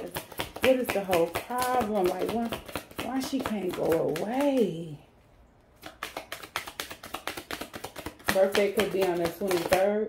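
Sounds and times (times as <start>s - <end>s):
cards being shuffled: 0.0s - 4.8s, 5.7s - 9.9s.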